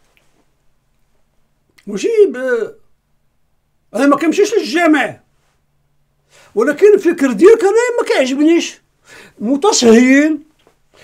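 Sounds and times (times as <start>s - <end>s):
man talking: 1.8s - 2.9s, 3.9s - 5.3s, 6.6s - 8.8s, 9.4s - 10.5s.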